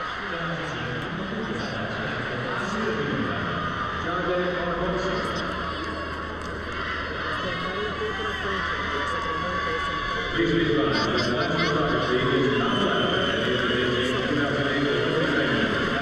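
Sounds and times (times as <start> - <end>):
arena crowd hubbub: 0.0 - 16.0
voices talking: 0.0 - 16.0.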